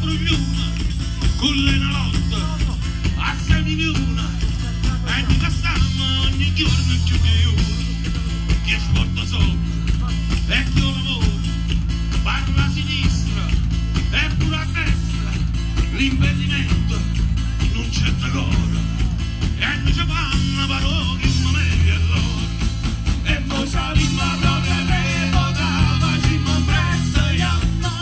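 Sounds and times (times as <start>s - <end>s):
accordion: 0.0s - 19.9s
bass line: 0.0s - 28.0s
live band playing: 0.0s - 28.0s.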